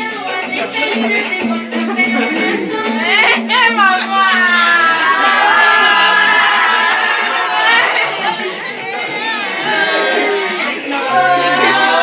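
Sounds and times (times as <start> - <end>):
women chattering: 0.3 - 4.4.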